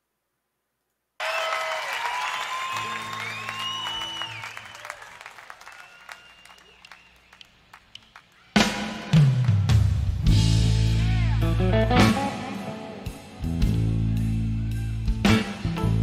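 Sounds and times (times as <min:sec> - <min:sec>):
audience applauding and cheering: 0:01.2 - 0:10.3
rock band playing: 0:08.6 - 0:16.0.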